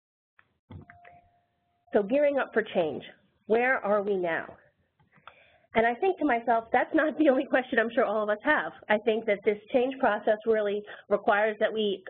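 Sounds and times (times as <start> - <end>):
person speaking: 2.0 - 4.5, 5.8 - 12.0.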